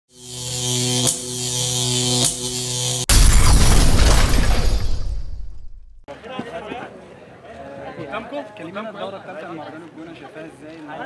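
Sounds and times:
buzzing drone with hiss: 0:00.1 - 0:03.1.

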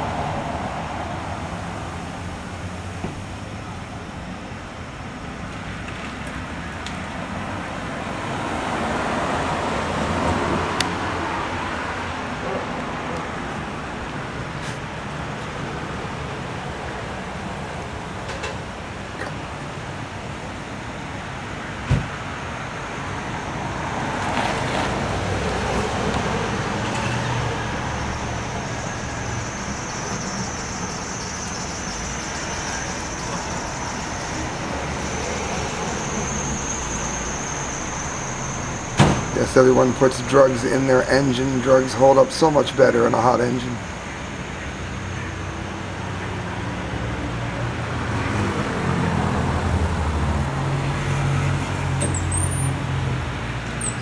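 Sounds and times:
cars passing on street: 0:00.0 - 0:54.0
steady traffic hum: 0:00.0 - 0:54.0.

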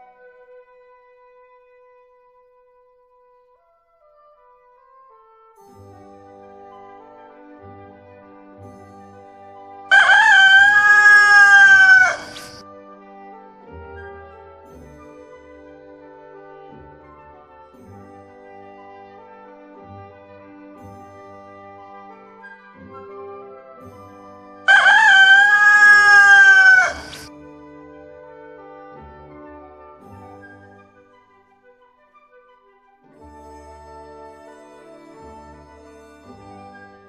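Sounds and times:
quiet background music: 0:00.0 - 0:37.0
rooster crowing: 0:09.9 - 0:12.6, 0:24.7 - 0:27.3.

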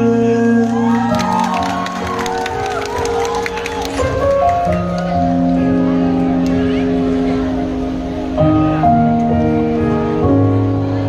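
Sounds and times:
audience clapping and cheering: 0:00.5 - 0:05.6.

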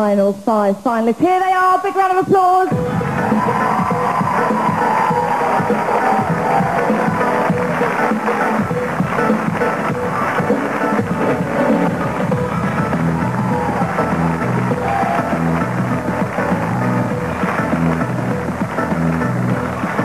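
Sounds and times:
stage music with repeating bass line: 0:02.7 - 0:20.0.

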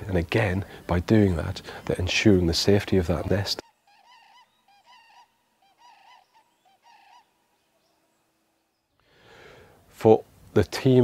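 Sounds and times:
cranes calling faintly: 0:03.6 - 0:08.8.

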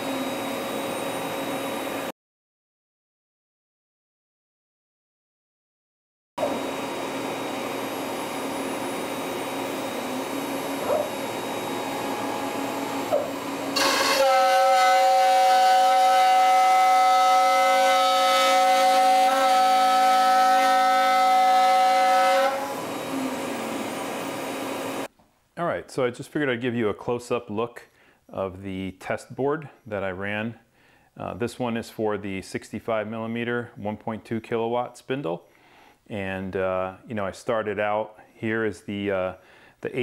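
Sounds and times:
high-pitched whine of cutting wood: 0:00.0 - 0:02.1, 0:06.4 - 0:25.1
router spindle humming: 0:06.4 - 0:16.0.

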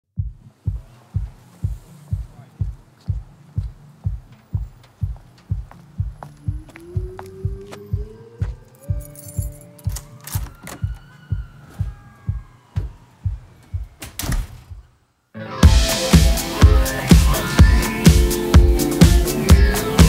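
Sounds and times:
low thumping pulse: 0:00.2 - 0:10.0, 0:10.6 - 0:14.9
rock band playing: 0:15.5 - 0:20.0.

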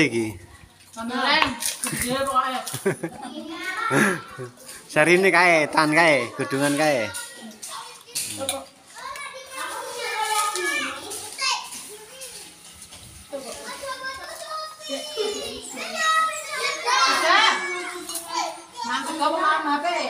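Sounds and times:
women and children chattering: 0:00.0 - 0:20.0.

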